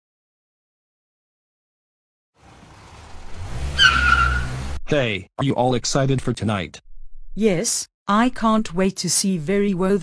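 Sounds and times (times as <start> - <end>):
car engine rumble: 2.4 - 4.9
tyres squealing: 3.0 - 4.8.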